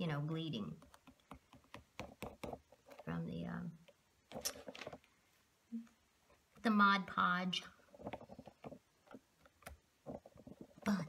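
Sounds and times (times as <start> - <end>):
fingers tapping on paper: 0.7 - 3.1.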